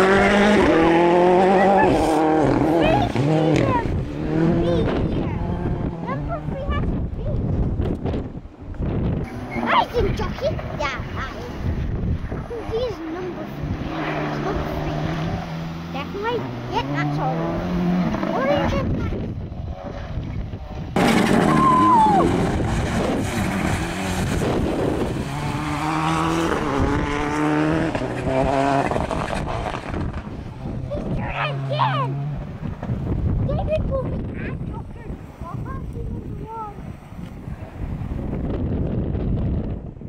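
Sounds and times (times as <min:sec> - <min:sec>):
rally car engine revving: 0:00.0 - 0:39.8.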